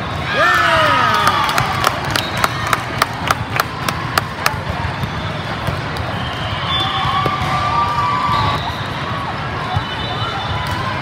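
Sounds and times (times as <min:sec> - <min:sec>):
crowd cheering and calling out: 0:00.2 - 0:04.3
long held shout: 0:00.3 - 0:01.5.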